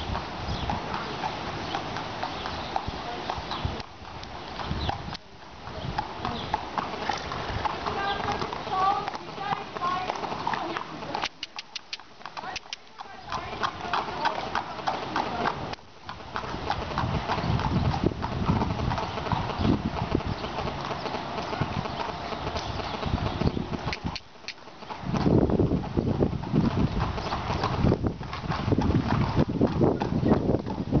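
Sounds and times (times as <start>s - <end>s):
horse hooves on dirt and gravel: 0.0s - 31.0s.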